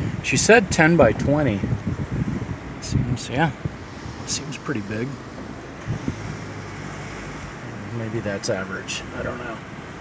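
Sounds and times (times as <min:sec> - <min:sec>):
low engine hum: 0:00.0 - 0:10.0
car cabin road hiss: 0:01.5 - 0:10.0.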